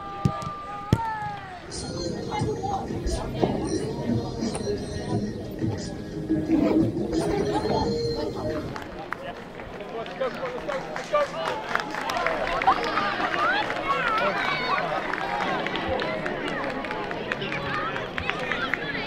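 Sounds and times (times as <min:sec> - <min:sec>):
people calling and shouting: 0:00.0 - 0:19.0.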